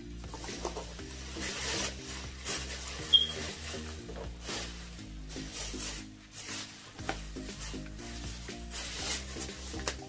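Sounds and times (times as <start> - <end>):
plastic bags rustling: 0.2 - 10.0
high-pitched chirp: 3.1 - 3.4.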